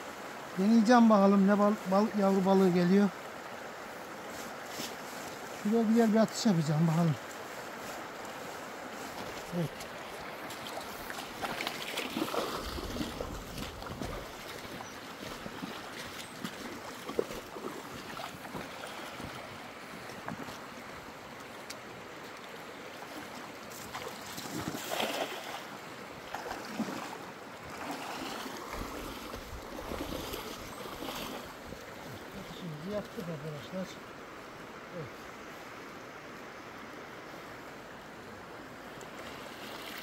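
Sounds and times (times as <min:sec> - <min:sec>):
stream running over rocks: 0:00.0 - 0:40.0
splashes from wading: 0:07.8 - 0:20.2, 0:21.7 - 0:33.2, 0:39.1 - 0:40.0
cast net splashing into water: 0:10.4 - 0:19.1, 0:23.8 - 0:31.5
wind gusts on microphone: 0:12.1 - 0:14.9.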